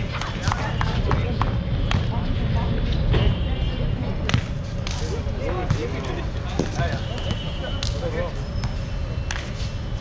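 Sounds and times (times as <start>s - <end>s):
sneaker squeaks: 6.5s - 10.0s.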